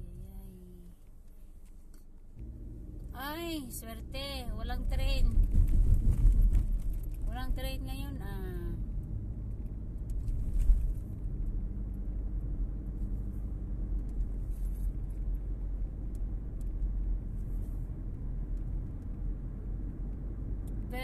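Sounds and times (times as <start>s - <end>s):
car engine and tyre rumble: 0.0s - 21.0s.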